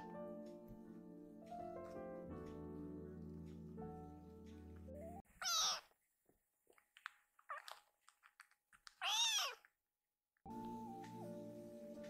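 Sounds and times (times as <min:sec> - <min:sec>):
kitten meowing: 0:05.4 - 0:05.9, 0:09.0 - 0:09.7.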